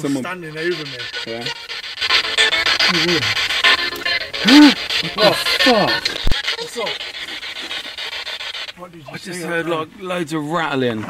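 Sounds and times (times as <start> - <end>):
stuttering radio static: 0.0 - 9.2.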